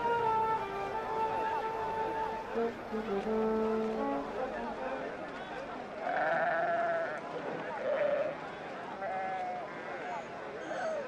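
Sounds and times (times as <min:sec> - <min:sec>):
sheep bleating: 0:06.0 - 0:07.2.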